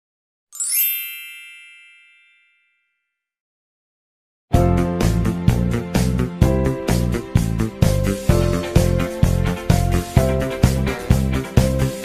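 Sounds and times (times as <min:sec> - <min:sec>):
bright chime: 0:00.5 - 0:03.2.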